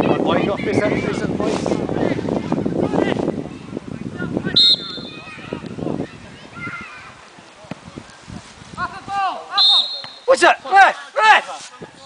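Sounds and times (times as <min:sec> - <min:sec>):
referee's whistle blast: 0:04.6 - 0:05.3, 0:09.6 - 0:10.3.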